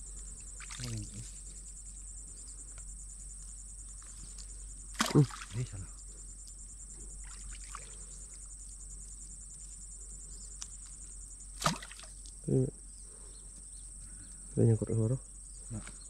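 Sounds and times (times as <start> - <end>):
insect chorus: 0.0 - 16.0.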